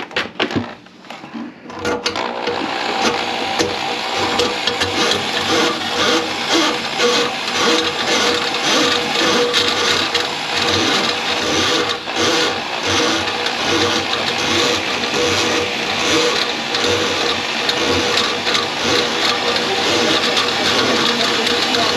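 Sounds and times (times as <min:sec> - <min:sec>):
drain cleaning motor humming: 0:02.0 - 0:21.9
cable rattling and clattering: 0:13.3 - 0:21.9.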